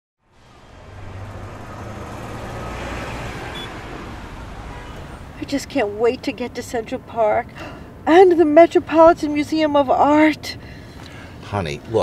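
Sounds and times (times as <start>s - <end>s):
road traffic noise: 0.2s - 12.0s.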